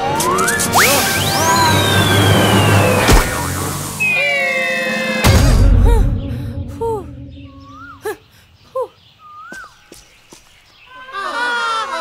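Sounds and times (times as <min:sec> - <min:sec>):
cartoon falling whistle: 0:00.1 - 0:05.1.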